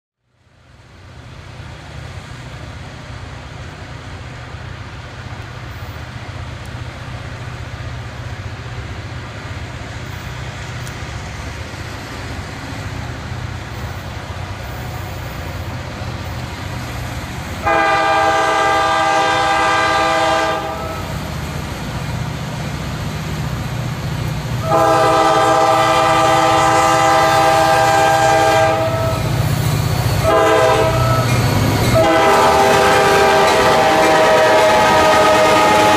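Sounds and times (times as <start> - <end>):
diesel train engine rumble: 0.2 - 35.9
train air horn blast: 17.6 - 21.2, 24.6 - 29.3, 30.2 - 31.3, 32.0 - 35.9.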